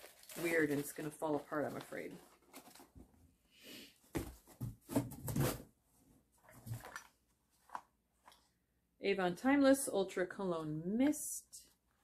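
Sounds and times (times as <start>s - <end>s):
packaging rustling and knocking: 4.1s - 5.7s.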